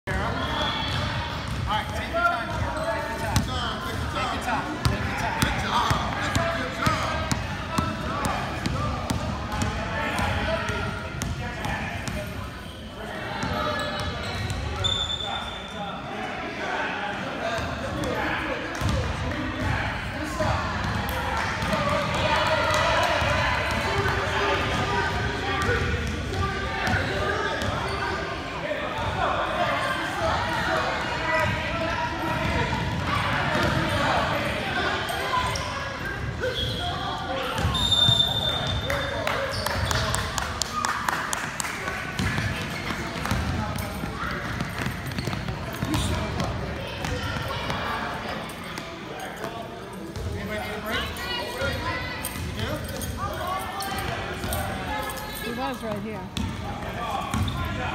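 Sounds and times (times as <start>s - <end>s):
chatter of voices: 0.0s - 57.9s
basketballs bouncing on wooden floor: 42.2s - 47.7s.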